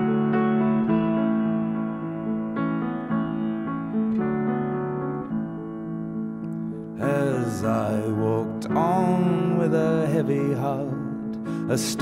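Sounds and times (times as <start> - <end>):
slow piano chords: 0.0 - 12.0.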